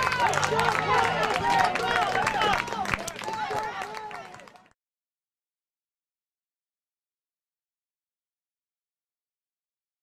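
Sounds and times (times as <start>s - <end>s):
spectators talking and calling out: 0.0s - 4.6s
scattered clapping: 0.0s - 4.8s.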